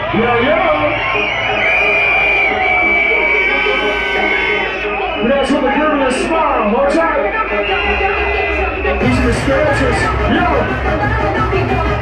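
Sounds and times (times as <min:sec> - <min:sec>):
loud hardcore dance music: 0:00.0 - 0:12.0.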